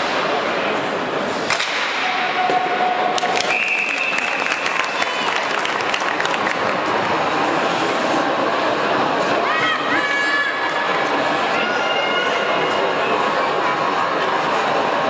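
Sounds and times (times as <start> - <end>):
crowd voices: 0.0 - 15.0.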